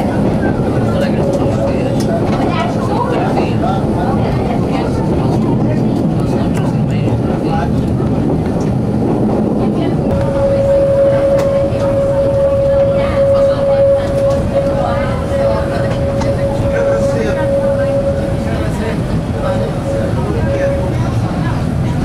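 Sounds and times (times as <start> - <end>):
indistinct voices: 0.0 - 8.3, 9.6 - 22.0
railcar engine and wheels rumbling: 0.0 - 22.0
steady single-pitched tone: 10.1 - 21.5.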